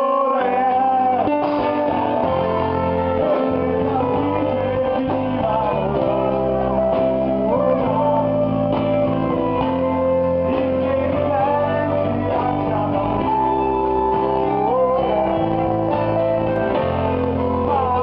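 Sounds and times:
electric bass: 0.0 - 18.0
guitar: 0.0 - 18.0
man singing: 0.0 - 18.0.

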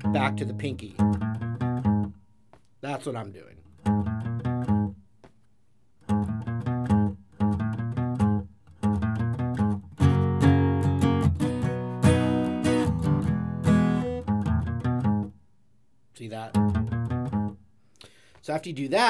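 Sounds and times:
acoustic guitar playing: 0.0 - 5.3, 6.0 - 15.4, 16.4 - 17.7.

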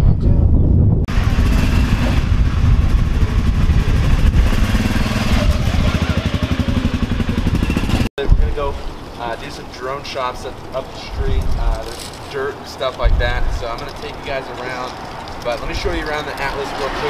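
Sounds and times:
utility vehicle engine running: 1.1 - 8.1.

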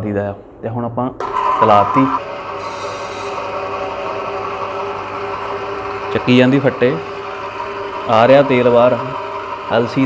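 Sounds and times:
oil press motor hum: 1.2 - 10.0
brief hiss: 2.6 - 3.5
screw grinding rasp: 2.6 - 3.5.

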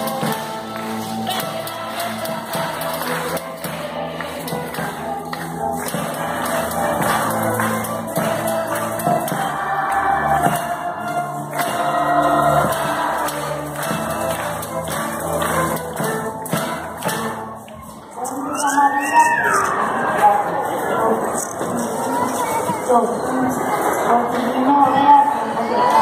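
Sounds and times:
string orchestra playing: 0.0 - 20.8.

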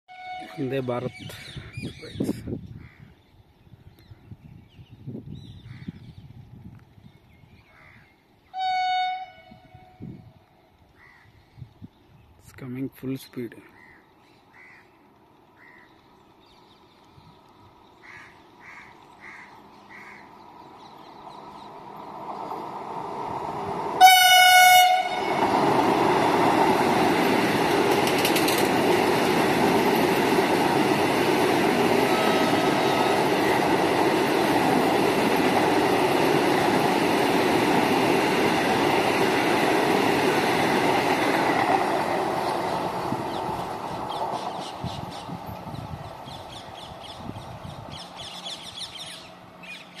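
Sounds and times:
train horn blast: 0.1 - 0.8, 8.6 - 10.3, 24.0 - 25.5, 32.0 - 33.3
train passing at high speed: 18.4 - 50.0.

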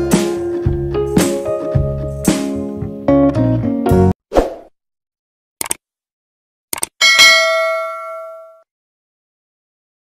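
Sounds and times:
bright bell ding: 7.0 - 8.6.

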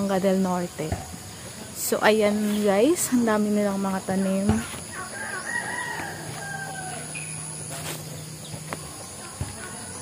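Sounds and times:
rooster crowing: 4.9 - 7.6.

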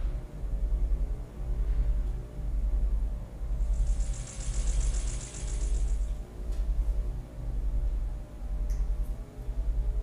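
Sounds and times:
fast high-pitched rattle: 3.6 - 6.2.

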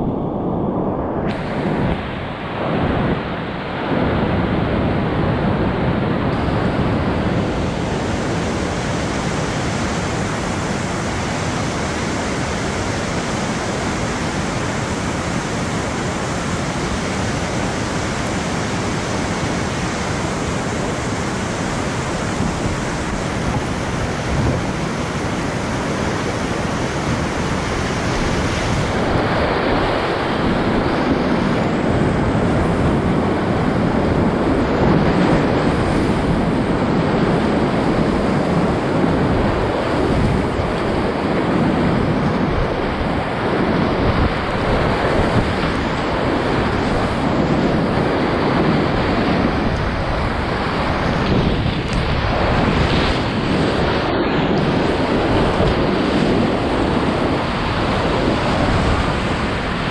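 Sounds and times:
whitewater rapids rushing: 1.3 - 59.9.

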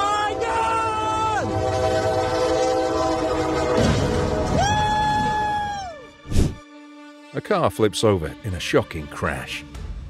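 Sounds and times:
train horn chord: 0.2 - 4.4.

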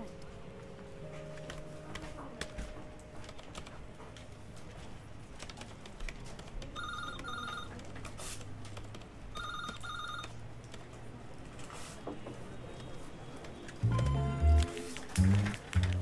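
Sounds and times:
keyboard typing clicks: 1.4 - 3.8, 5.4 - 10.9, 12.8 - 16.0
telephone ringing: 6.8 - 7.8, 9.4 - 10.4.

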